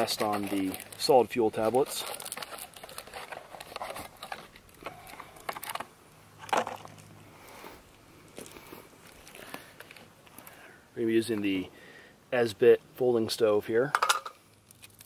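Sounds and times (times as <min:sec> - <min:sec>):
camping gear clicking and rustling: 0:00.0 - 0:07.2, 0:08.2 - 0:10.6.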